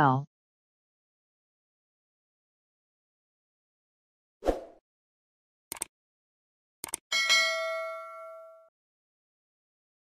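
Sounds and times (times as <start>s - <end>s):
notification bell ding: 7.1s - 8.7s.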